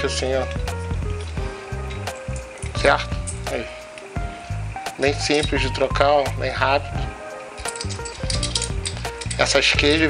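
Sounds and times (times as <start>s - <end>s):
background music with steady beat: 0.0s - 10.0s
light clicks: 7.3s - 9.5s.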